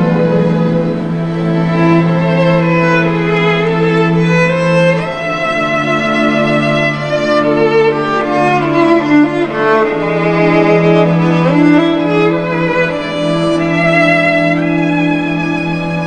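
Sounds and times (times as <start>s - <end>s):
orchestral strings playing: 0.0s - 16.0s.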